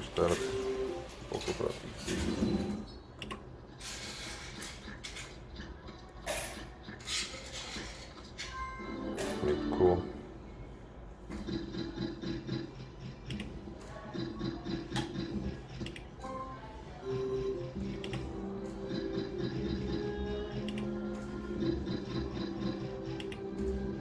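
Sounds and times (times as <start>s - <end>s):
electronic slot machine music: 0.0s - 2.9s, 8.4s - 10.5s, 11.4s - 24.0s.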